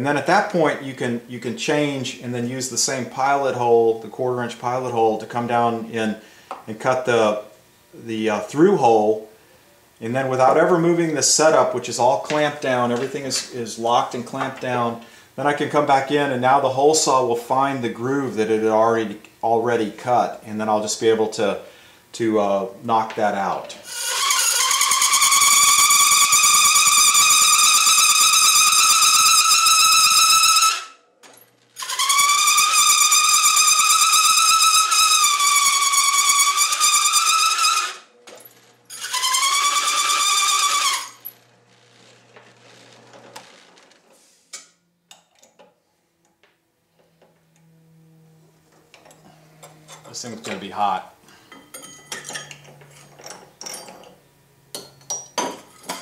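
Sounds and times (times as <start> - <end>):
hole saw squealing through steel: 23.8 - 31.0, 31.7 - 38.2, 38.9 - 41.5, 47.4 - 53.2
drill press motor humming: 38.4 - 43.8, 46.3 - 50.4.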